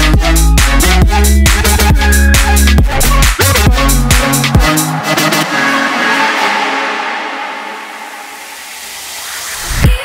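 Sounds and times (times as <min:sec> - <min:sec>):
heavy bass and drums: 0:00.0 - 0:06.8
sustained synth wash: 0:01.7 - 0:10.0.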